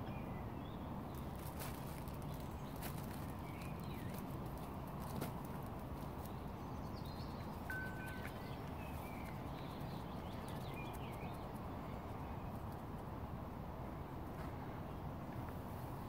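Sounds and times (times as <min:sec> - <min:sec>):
small birds chirping: 0:00.0 - 0:13.5
twigs snapping and rustling: 0:01.1 - 0:06.6.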